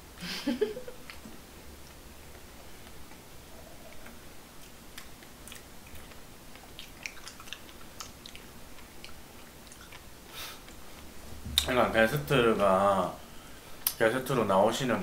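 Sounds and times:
people chewing: 0.9 - 11.7
wet mouth clicks: 3.1 - 10.8.

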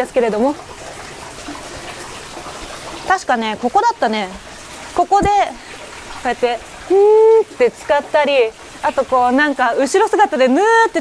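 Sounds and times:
water running into stone bath: 0.0 - 11.0.

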